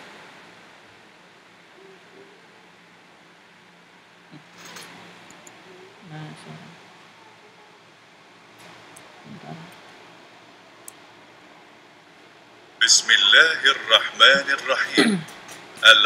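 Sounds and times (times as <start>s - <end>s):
microphone hiss with hum: 0.0s - 16.0s.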